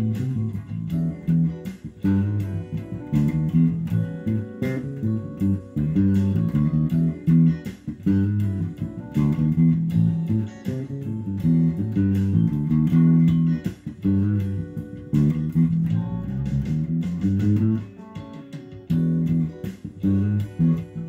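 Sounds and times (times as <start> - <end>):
electric bass plucked notes: 0.0 - 21.0.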